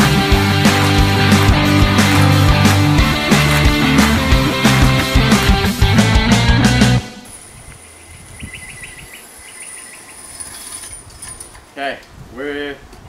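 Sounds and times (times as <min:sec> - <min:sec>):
rapid chirps: 0:07.3 - 0:10.8.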